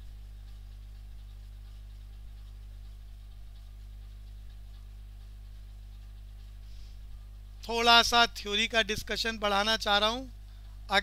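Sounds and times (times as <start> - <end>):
electrical mains hum: 0.0 - 11.0
person speaking: 7.6 - 11.0.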